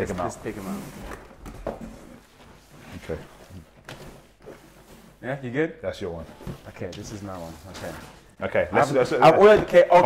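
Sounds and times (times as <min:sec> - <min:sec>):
faint scraping: 0:02.0 - 0:09.9.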